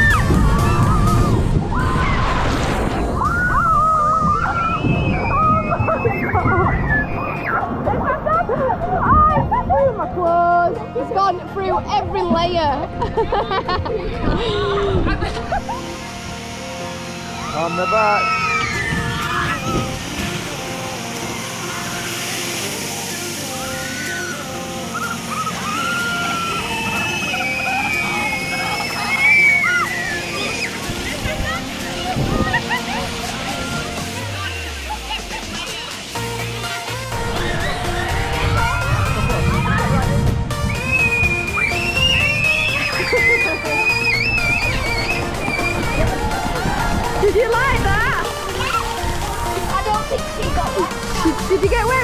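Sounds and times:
churning water rushing: 0.0 - 52.0
long high cry: 23.5 - 30.9, 40.8 - 46.4
riders shouting and whooping: 23.6 - 35.3, 37.3 - 40.2, 40.8 - 48.8.

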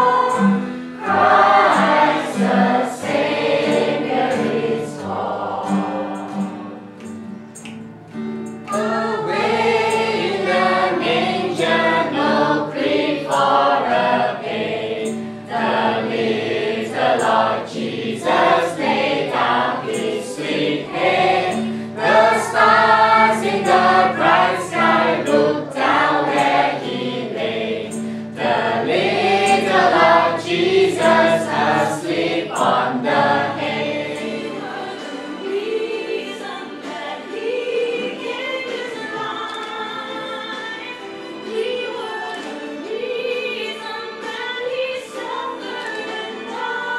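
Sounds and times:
adults and children singing carol: 0.0 - 6.8, 8.7 - 46.9.

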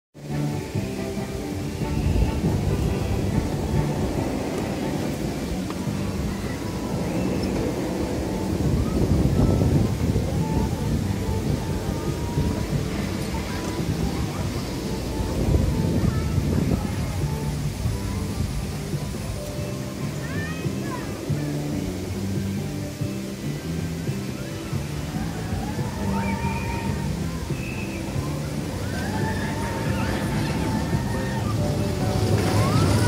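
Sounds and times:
background music: 0.2 - 33.0
roller coaster rumbling on track: 0.2 - 33.0.

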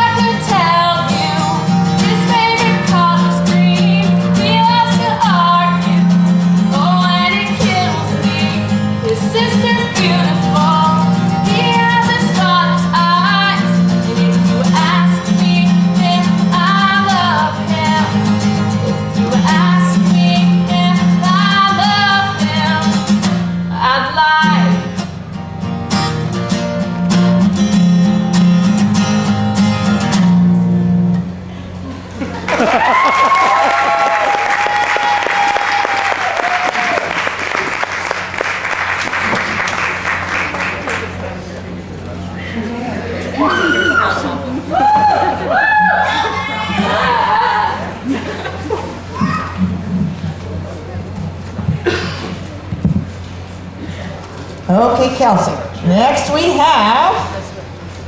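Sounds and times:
woman singing: 0.0 - 18.4, 19.2 - 23.0, 23.7 - 24.9
acoustic guitar: 0.0 - 58.0
audience applauding and cheering: 32.4 - 41.4.

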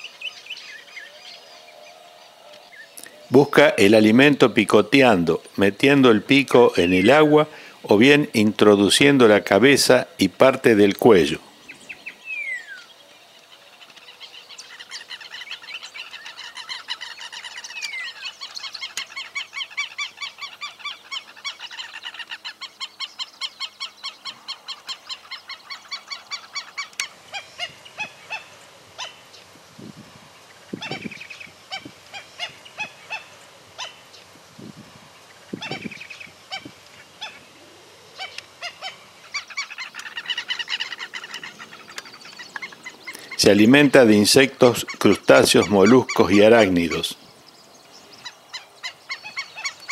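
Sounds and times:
birds yapping calls: 0.0 - 49.9.

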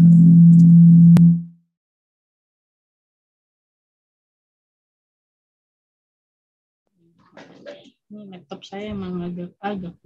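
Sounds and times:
loud low electronic drone: 0.0 - 1.5.

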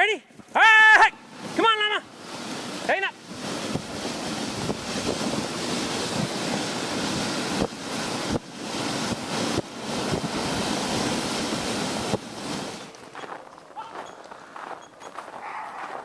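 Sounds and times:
sled runners hissing on snow: 1.2 - 16.0
wind on microphone: 3.2 - 12.8.

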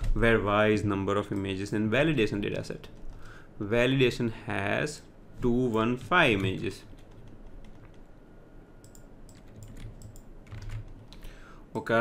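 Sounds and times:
typing on keyboard: 6.4 - 8.1, 8.8 - 11.2.

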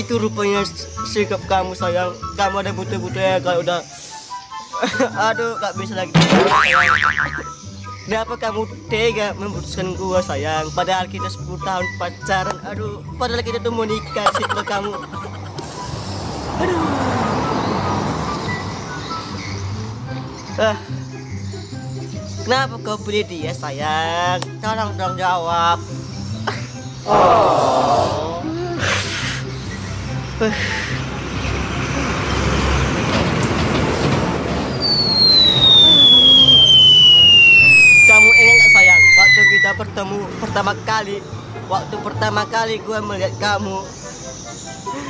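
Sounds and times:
background music: 0.0 - 32.2
high-pitched whistle gliding down: 13.9 - 15.6, 34.8 - 39.8
man wailing in mock crying: 14.0 - 15.6
rushing noise: 34.6 - 39.7.

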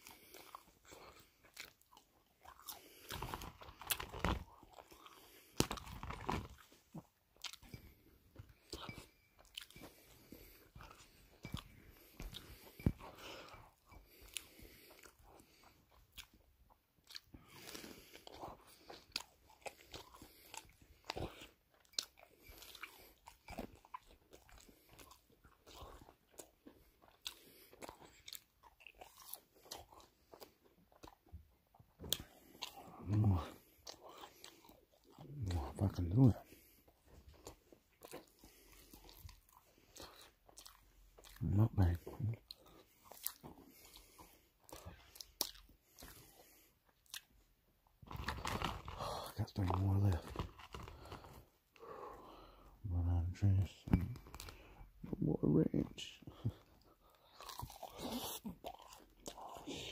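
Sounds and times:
chewing crunchy food: 0.0 - 52.6, 53.2 - 55.2, 55.8 - 59.9.

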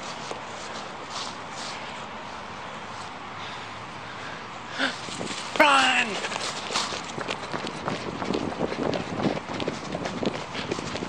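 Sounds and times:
steady rushing noise: 0.0 - 11.0
footsteps running on grass: 5.0 - 11.0.

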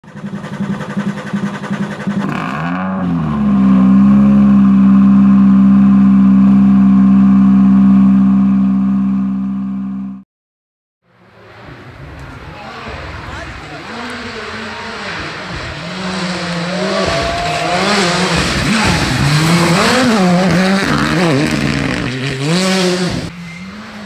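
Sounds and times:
car engine revving: 0.0 - 10.2, 12.7 - 24.0.

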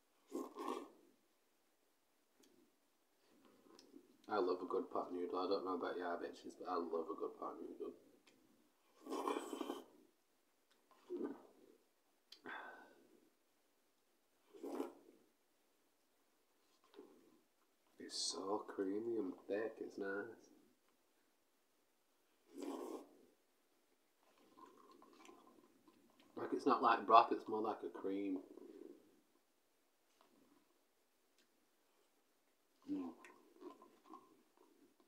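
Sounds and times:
person slurping noodles: 0.2 - 1.0, 8.9 - 10.0, 10.9 - 11.7, 14.4 - 15.2, 22.4 - 23.2, 32.8 - 34.9.

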